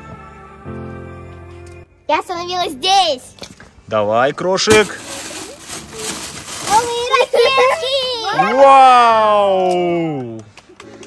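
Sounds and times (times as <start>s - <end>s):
plastic bag crinkling: 4.6s - 8.0s
children's voices: 5.9s - 8.6s.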